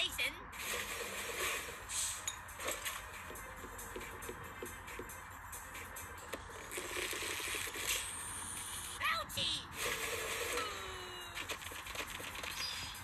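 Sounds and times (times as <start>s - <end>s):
squeaky cartoon voice: 10.5s - 11.4s.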